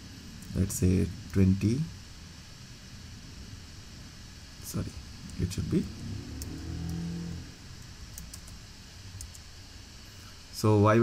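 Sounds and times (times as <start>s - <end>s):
low hum: 0.0s - 10.8s
computer keyboard keystrokes: 8.1s - 8.6s, 9.2s - 9.5s.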